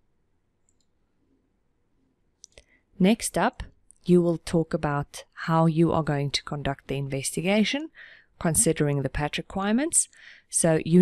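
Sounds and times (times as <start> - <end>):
faint mouse click: 0.6 - 1.0.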